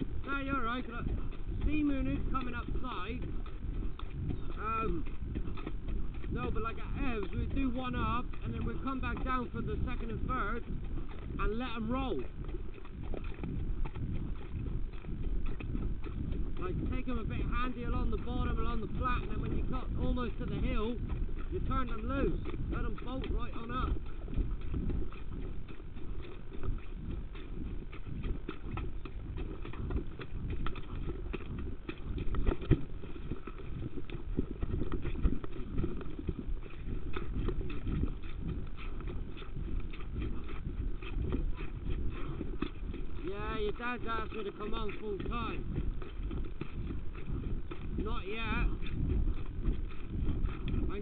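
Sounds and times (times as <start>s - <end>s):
horse hoofbeats: 0.0s - 51.0s
person talking: 0.2s - 3.2s, 4.5s - 5.0s, 6.3s - 10.6s, 11.4s - 12.3s, 16.6s - 24.0s, 43.2s - 45.7s, 48.0s - 48.8s.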